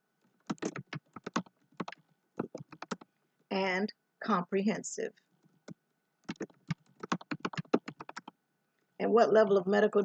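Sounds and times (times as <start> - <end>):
keyboard typing clicks: 0.4 - 3.1, 5.4 - 8.4.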